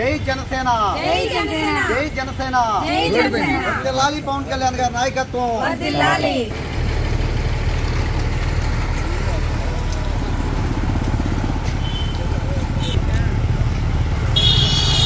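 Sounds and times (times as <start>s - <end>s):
road traffic: 0.0s - 15.0s.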